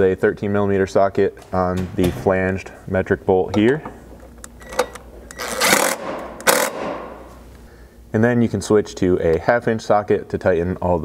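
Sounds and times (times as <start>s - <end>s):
impact driver hammering bolt: 4.7s - 7.3s.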